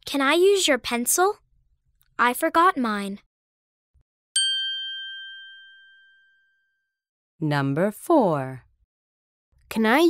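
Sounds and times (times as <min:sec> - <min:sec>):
bell-like chime: 0:04.4 - 0:07.0.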